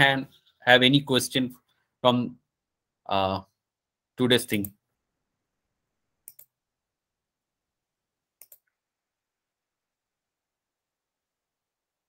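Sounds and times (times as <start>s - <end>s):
computer mouse clicks: 6.2s - 6.6s, 8.4s - 8.8s.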